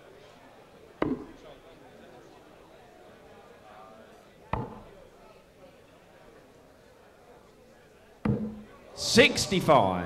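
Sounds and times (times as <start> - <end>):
dart striking dartboard: 1.0 - 1.3, 4.6 - 4.9, 8.3 - 8.6.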